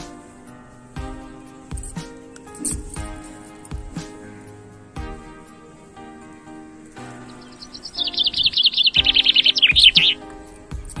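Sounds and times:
background music: 0:00.0 - 0:11.0
small bird trilling: 0:07.3 - 0:10.2.

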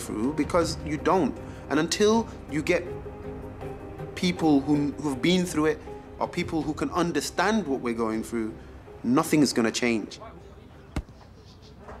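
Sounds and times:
faint outdoor background noise: 0:08.6 - 0:12.0
football being kicked: 0:11.0 - 0:11.2.

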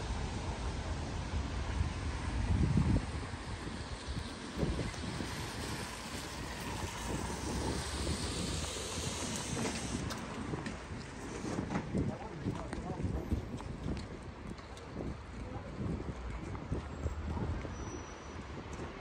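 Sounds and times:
outdoor street noise hiss: 0:00.0 - 0:19.0
wind buffeting microphone: 0:01.2 - 0:19.0.

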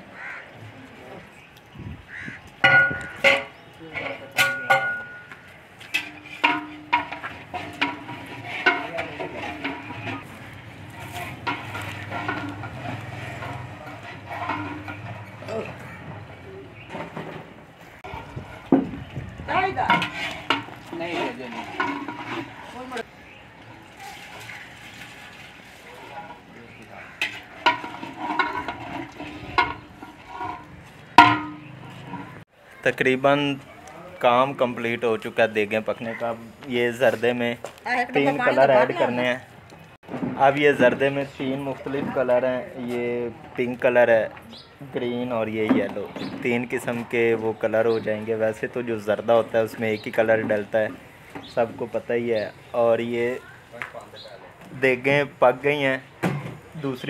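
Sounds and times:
ladle clanking on metal pots: 0:02.1 - 0:32.5
men talking: 0:08.5 - 0:12.6, 0:13.4 - 0:16.9, 0:20.8 - 0:22.4, 0:25.9 - 0:27.2, 0:32.8 - 0:39.6, 0:40.3 - 0:57.0.

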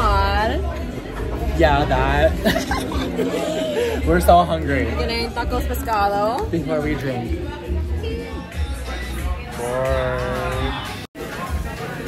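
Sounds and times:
background music with heavy bass: 0:00.0 - 0:12.0.

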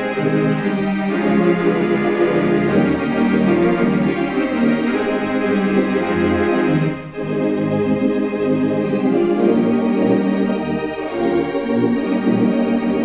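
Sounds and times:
organ playing hymn: 0:00.0 - 0:13.0.

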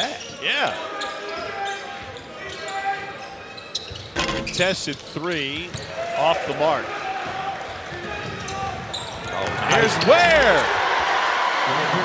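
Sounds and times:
crowd chatter: 0:06.2 - 0:12.0.

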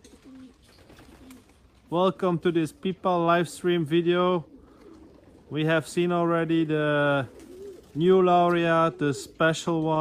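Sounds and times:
faint pigeons cooing: 0:00.0 - 0:10.0.

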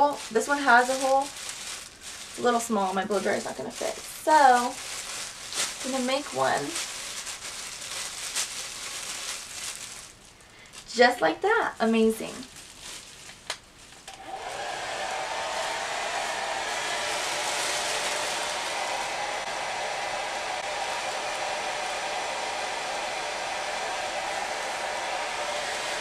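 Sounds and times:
hair dryer motor running: 0:14.1 - 0:26.0.

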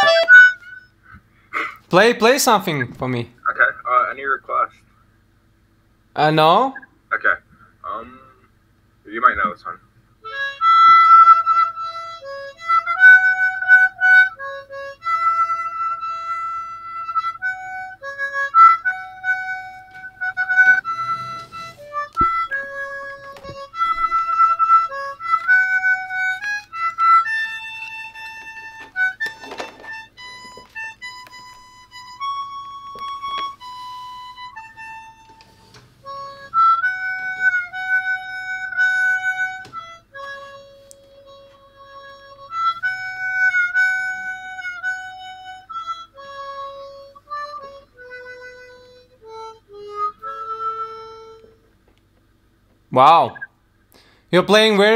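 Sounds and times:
harmonica melody: 0:00.0 - 0:03.2, 0:10.2 - 0:52.6.

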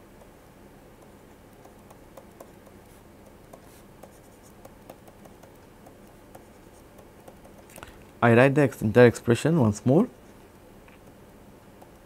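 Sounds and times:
stylus tapping and scratching: 0:00.1 - 0:08.0, 0:10.2 - 0:12.0.

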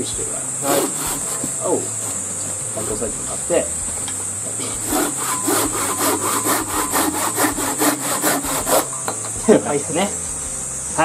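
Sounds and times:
hand saw cutting wood: 0:00.0 - 0:03.7, 0:04.5 - 0:09.1.

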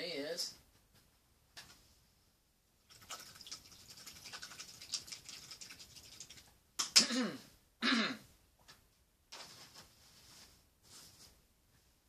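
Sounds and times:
scratching and rustling: 0:09.3 - 0:11.4.

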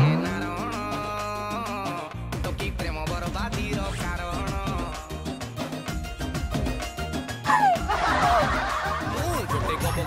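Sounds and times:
background music with steady beat: 0:00.0 - 0:10.0
laughter: 0:07.5 - 0:10.0.

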